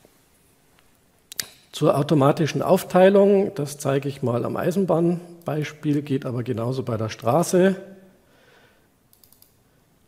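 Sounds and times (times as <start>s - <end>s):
computer mouse clicks: 9.1s - 9.6s.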